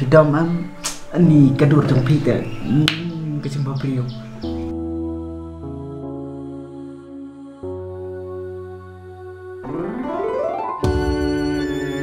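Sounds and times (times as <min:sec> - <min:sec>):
man talking: 0:00.0 - 0:04.2
background music: 0:00.0 - 0:12.0
finger snap: 0:00.8 - 0:01.1, 0:02.8 - 0:03.2.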